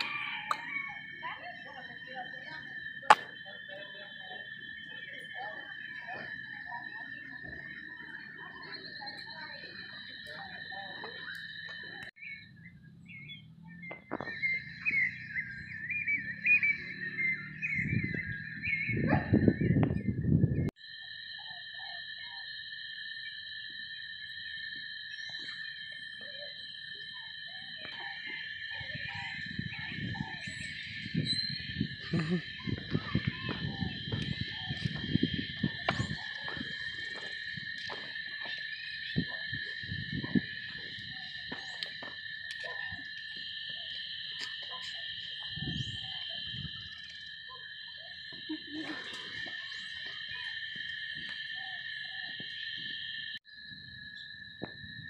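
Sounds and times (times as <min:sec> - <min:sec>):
insects droning: 0:00.0 - 0:55.0.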